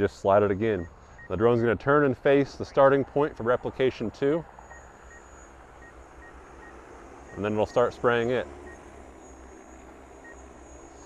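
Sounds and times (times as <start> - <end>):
distant drone rotors humming: 0.0 - 11.0
short faint beeps: 0.7 - 1.4, 4.6 - 8.0, 8.6 - 9.0, 10.2 - 11.0.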